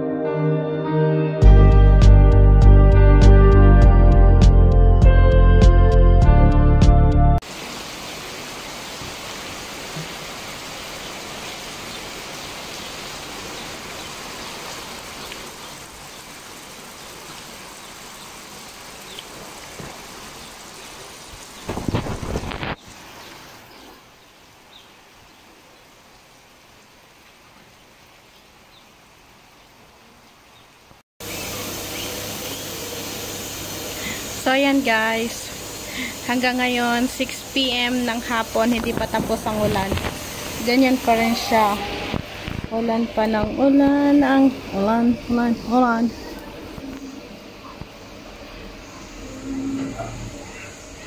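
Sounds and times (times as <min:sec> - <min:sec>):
steady rain hiss: 0:07.4 - 0:51.0.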